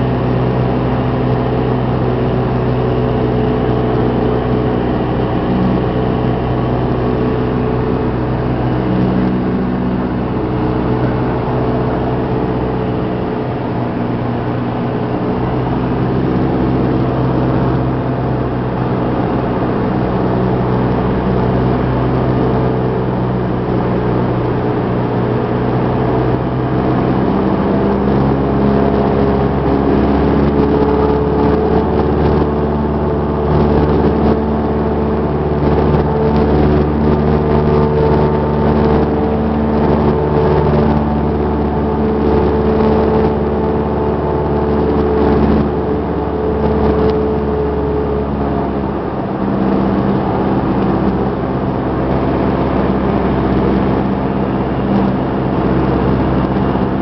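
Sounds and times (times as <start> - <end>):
airplane engine and propeller droning: 0.0 - 57.0.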